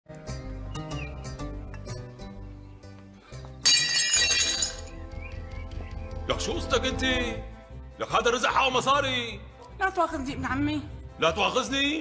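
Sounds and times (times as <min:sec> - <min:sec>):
background music: 0:00.1 - 0:12.0
dishes crashing and breaking: 0:03.6 - 0:04.9
shards clinking: 0:03.6 - 0:04.9.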